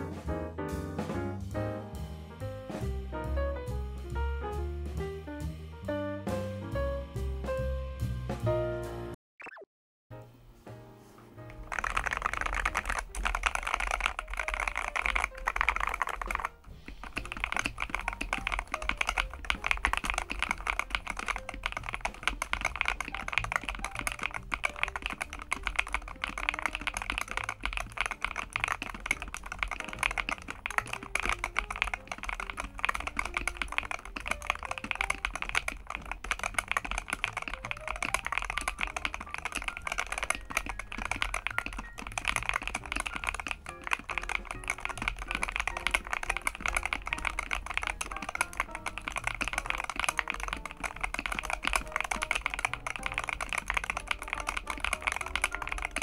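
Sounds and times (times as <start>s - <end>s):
fast keyboard typing: 11.5s - 56.0s.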